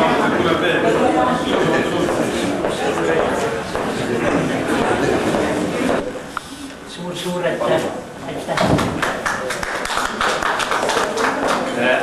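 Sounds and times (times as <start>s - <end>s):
people's voices in a room: 0.0s - 12.0s.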